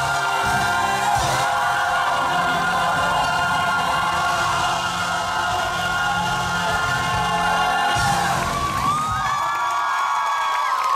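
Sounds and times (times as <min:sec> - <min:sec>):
singers and band holding chord: 0:00.0 - 0:09.2
audience cheering and whooping: 0:00.0 - 0:10.9.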